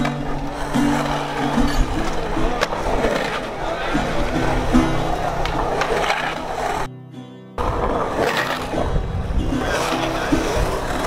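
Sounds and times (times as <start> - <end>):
skateboard clacks: 0.0 - 6.9, 7.6 - 11.0
skateboard wheels rolling on concrete: 0.0 - 6.9, 7.6 - 11.0.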